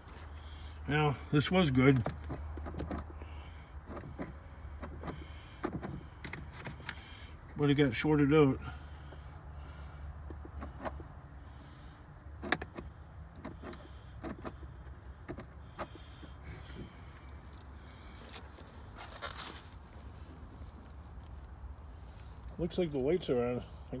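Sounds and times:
toy car pedal clicks and knocks: 1.9s - 3.1s, 3.9s - 7.0s, 10.2s - 11.1s, 12.4s - 16.0s.

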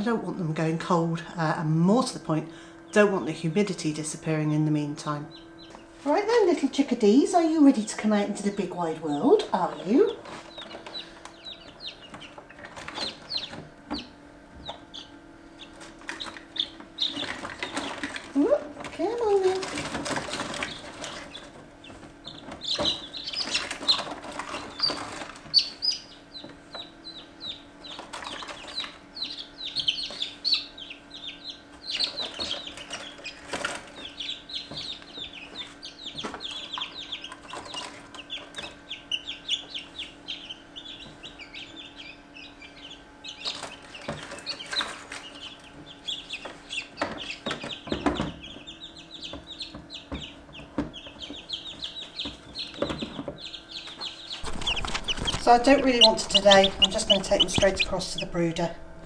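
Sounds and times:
chicks peeping: 0.0s - 59.0s
faint steady hum: 0.0s - 59.0s
handling knocks and rustles: 54.4s - 59.0s.

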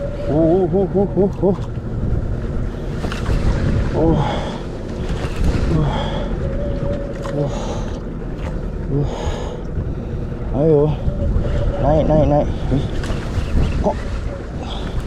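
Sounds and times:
sea: 0.0s - 15.0s
wind on microphone: 0.0s - 15.0s.

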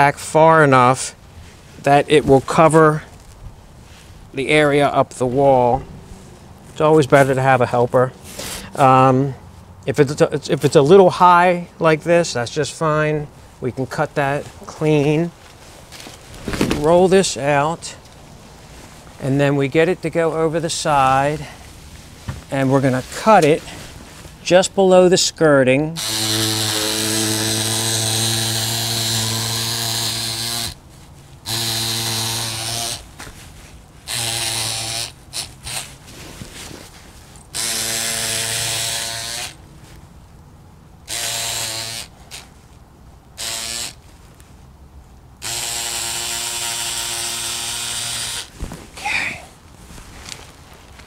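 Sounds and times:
electric cutter motor hum: 26.0s - 30.8s, 31.4s - 33.0s, 34.1s - 35.8s, 37.5s - 39.6s, 41.1s - 42.4s, 43.4s - 44.0s, 45.4s - 48.5s.

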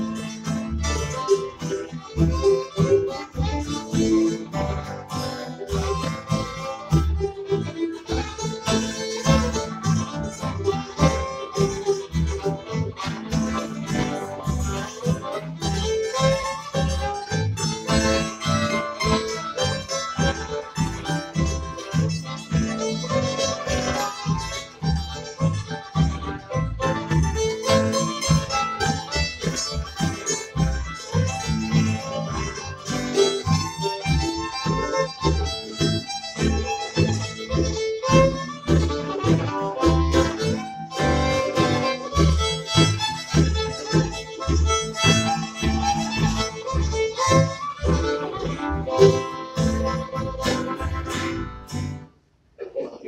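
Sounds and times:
fiddle melody: 0.0s - 52.3s
acoustic guitar: 0.0s - 52.8s
mandolin: 0.0s - 53.0s
upright bass plucking: 0.0s - 53.0s.

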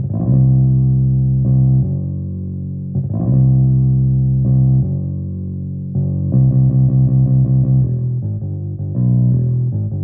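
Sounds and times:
electric bass guitar line: 0.0s - 10.0s.

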